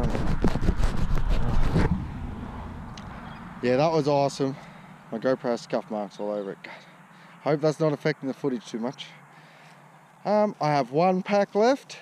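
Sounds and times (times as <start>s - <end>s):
hands rubbing over camera: 0.0s - 2.0s.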